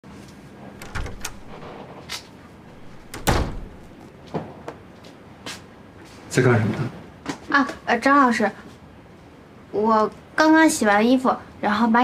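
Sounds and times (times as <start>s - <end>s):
door shutting with a thud: 0.8s - 2.0s, 2.7s - 4.1s.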